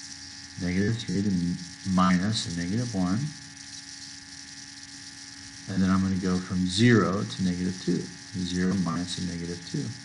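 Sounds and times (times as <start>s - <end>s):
electrical hum: 0.0s - 10.0s
even hiss: 0.0s - 10.0s.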